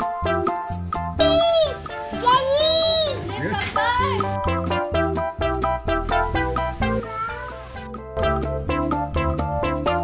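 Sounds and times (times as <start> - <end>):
background music: 0.0 - 10.0
toddler calling out: 1.2 - 3.3, 7.0 - 7.7.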